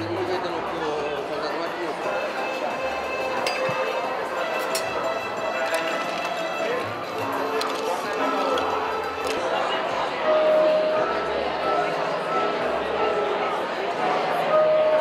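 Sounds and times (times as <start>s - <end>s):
background music: 0.0s - 15.0s
crowd chatter: 0.0s - 15.0s.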